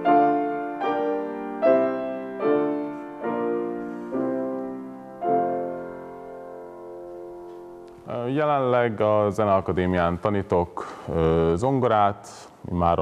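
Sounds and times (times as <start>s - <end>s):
grand piano chords: 0.0s - 10.5s.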